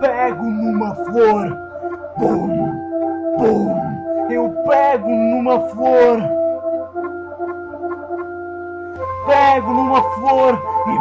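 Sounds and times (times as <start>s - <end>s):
held keyboard chord: 0.0s - 11.0s.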